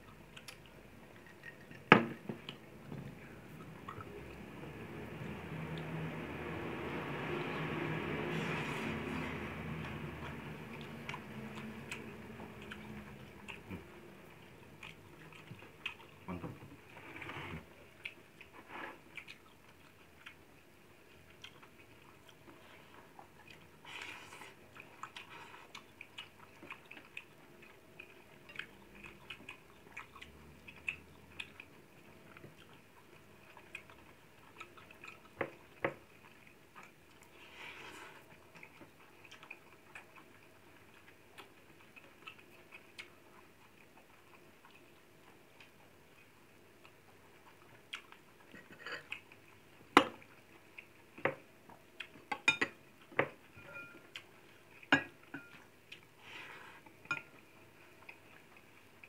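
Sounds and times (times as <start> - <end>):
person chewing: 0.0 - 1.8, 8.2 - 59.0
spoon clinking on ceramic dishes: 52.4 - 52.8, 53.6 - 54.0.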